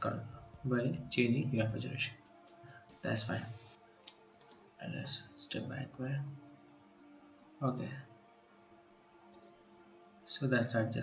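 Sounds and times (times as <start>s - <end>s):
low steady hum: 0.0s - 3.7s, 4.8s - 6.6s, 7.6s - 8.1s, 10.3s - 11.0s.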